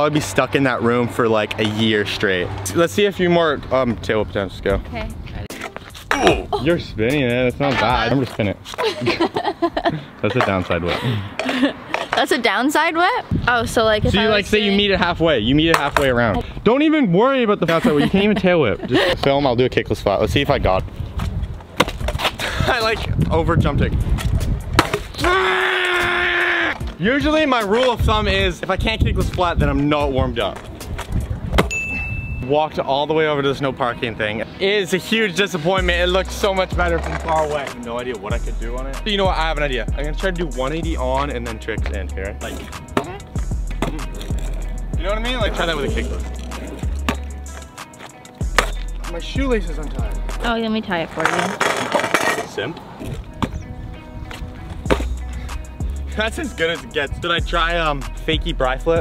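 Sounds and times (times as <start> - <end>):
background music: 4.7 - 9.4, 24.0 - 31.8, 32.4 - 59.0
scooter clacking on asphalt: 11.4 - 13.2, 50.4 - 53.6
man yelling: 25.2 - 26.8.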